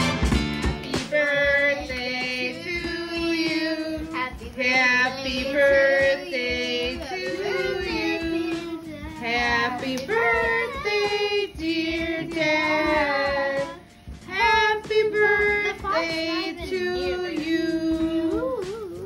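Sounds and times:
children and women singing: 0.8 - 19.0.

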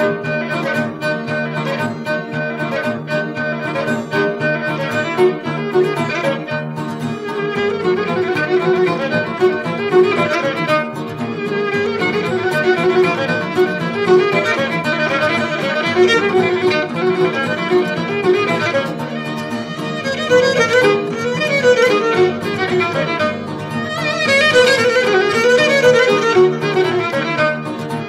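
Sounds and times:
bowed fiddle playing dance tune: 0.0 - 28.0
plucked lute accompaniment: 0.0 - 28.0.

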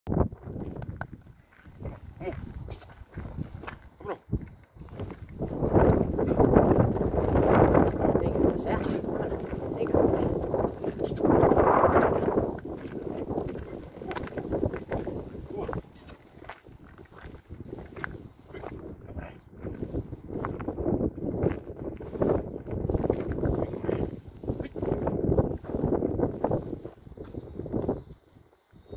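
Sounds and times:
wind buffeting microphone: 0.1 - 28.9
footsteps on gravel: 0.3 - 28.1.

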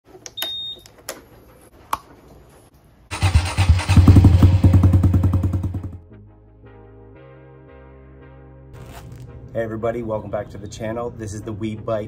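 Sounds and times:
motorcycle engine starting and idling: 3.1 - 6.0.

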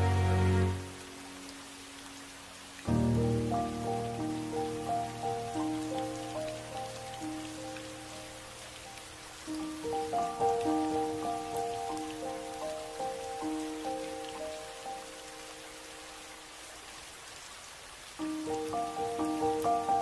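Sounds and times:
soft slow music: 0.0 - 16.6, 18.2 - 20.0
steady rain: 0.0 - 20.0.

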